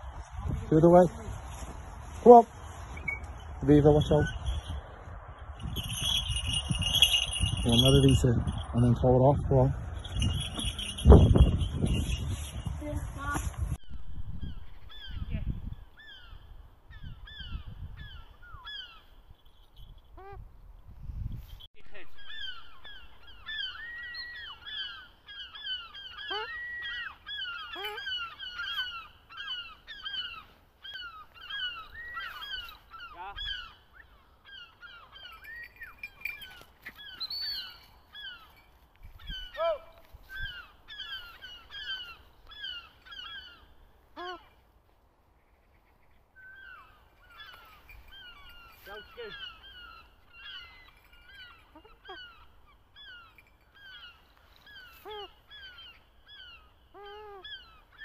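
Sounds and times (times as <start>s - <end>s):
birds calling: 1.5s - 20.4s, 21.9s - 58.0s
lower swooping bird calls: 22.1s - 38.6s.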